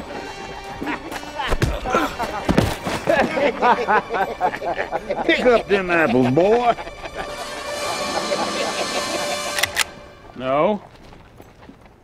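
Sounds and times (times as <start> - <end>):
held music tones: 0.0 - 10.8.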